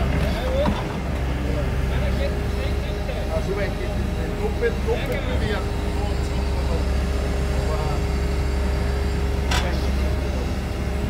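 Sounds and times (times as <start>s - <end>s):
excavator engine running: 0.0s - 11.0s.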